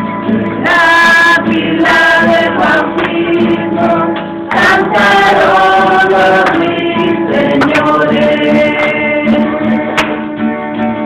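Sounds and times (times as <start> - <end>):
group singing worship music: 0.3 - 11.0.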